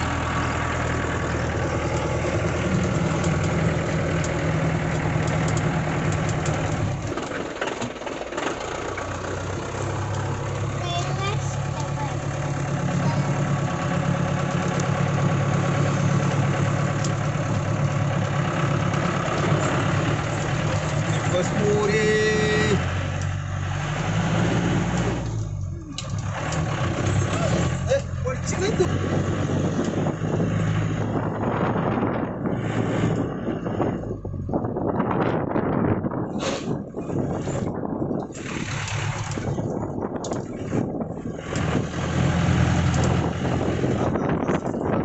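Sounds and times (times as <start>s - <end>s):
diesel engine pulling: 0.0s - 45.0s
road and wind noise: 0.0s - 45.0s.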